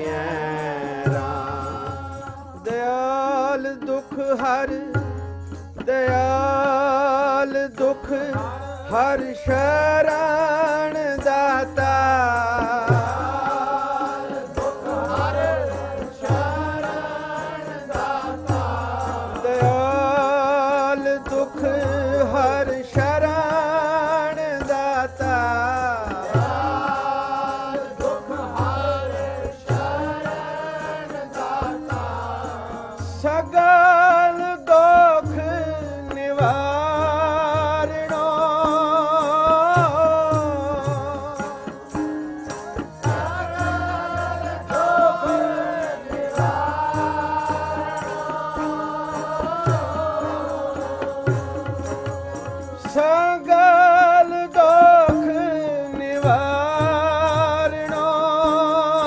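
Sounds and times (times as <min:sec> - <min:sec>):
harmonium held notes: 0:00.0 - 0:59.0
man singing: 0:00.0 - 0:59.0
tabla playing: 0:00.0 - 0:59.0.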